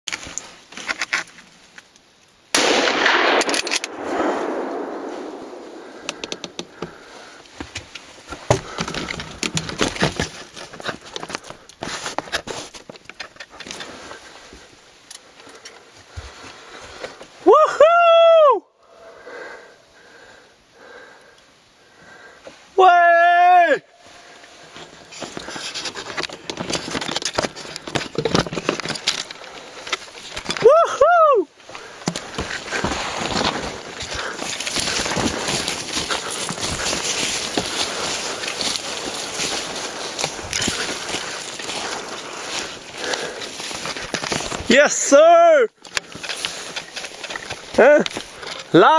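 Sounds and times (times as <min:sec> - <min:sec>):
brush and twigs rustling and snapping: 0:00.0 - 0:02.4, 0:03.0 - 0:17.4, 0:24.0 - 0:48.9
rifle shot echoing through forest: 0:02.5 - 0:06.8.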